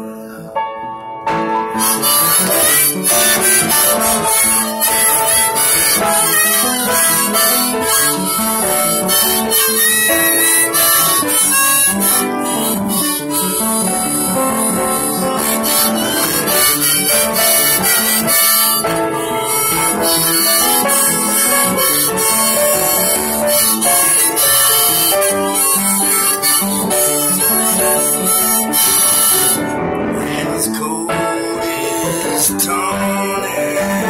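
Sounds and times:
piano accompaniment: 0.0 - 34.0
harmonica solo: 1.7 - 34.0.

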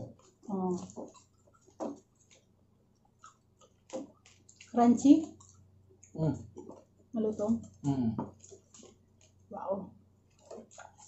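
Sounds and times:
wet mouth smacks and chewing: 0.0 - 7.0, 7.6 - 9.4, 10.3 - 11.0.

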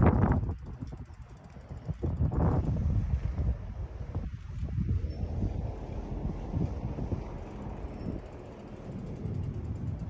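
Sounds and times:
bicycle freewheel ticking: 7.7 - 10.0.

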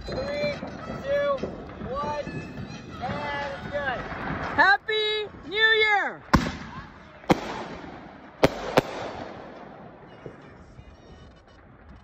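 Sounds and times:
fireworks bangs: 0.0 - 4.9, 6.2 - 12.0.

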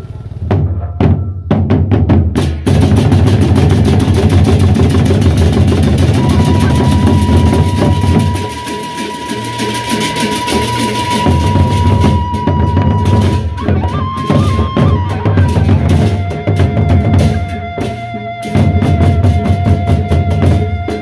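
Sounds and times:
drum ensemble drumming: 0.0 - 21.0
hand cymbals: 3.4 - 21.0
steady high tone: 6.0 - 21.0.

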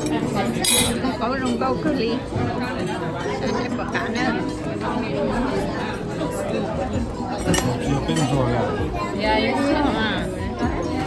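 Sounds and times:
cutlery and dishes clinking: 0.0 - 8.8
chatter of many voices: 0.0 - 11.0.

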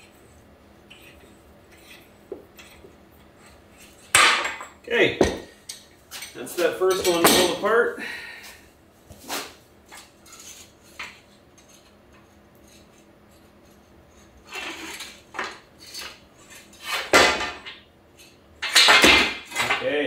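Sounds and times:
steel leaf springs clinking and scraping: 0.9 - 2.8, 5.6 - 7.6
metal clanks: 4.0 - 7.6.

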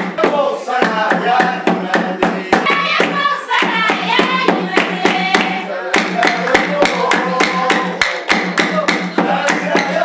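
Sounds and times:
voices singing a melody: 0.0 - 10.0
group hand clapping: 0.8 - 10.0.

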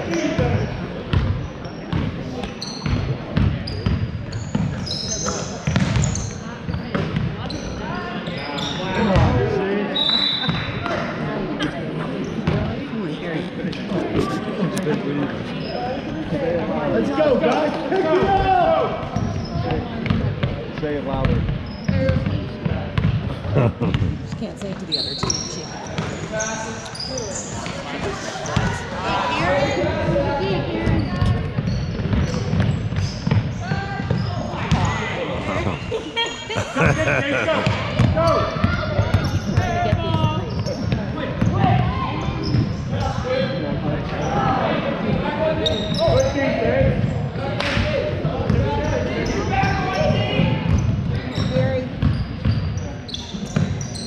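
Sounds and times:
sneaker squeaks: 0.0 - 11.1, 15.3 - 16.4, 19.0 - 20.2, 21.1 - 22.4, 24.0 - 54.0
indistinct chatter: 0.0 - 54.0.

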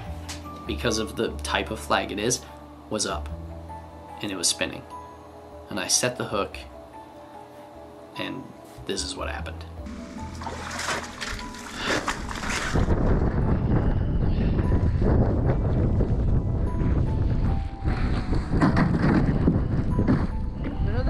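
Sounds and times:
background music: 0.0 - 21.0
wind buffeting microphone: 11.1 - 21.0.

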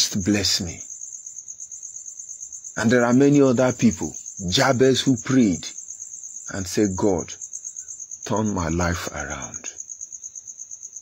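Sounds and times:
man's voice: 0.0 - 0.8, 2.8 - 5.7, 6.5 - 7.4, 8.3 - 9.8
cricket trilling: 0.0 - 11.0.

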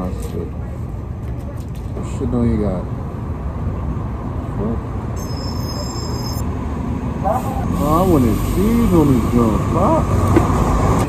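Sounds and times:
city street traffic rumble: 0.0 - 11.0
high-pitched squeal: 5.2 - 6.5.

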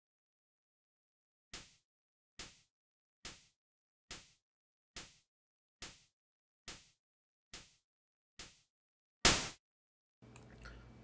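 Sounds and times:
synthesized snare hits: 9.2 - 9.6.

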